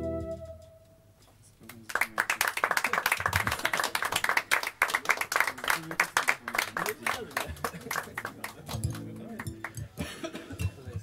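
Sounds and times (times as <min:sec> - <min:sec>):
short held pitched notes: 0:00.0 - 0:01.2
scattered claps: 0:01.6 - 0:10.1.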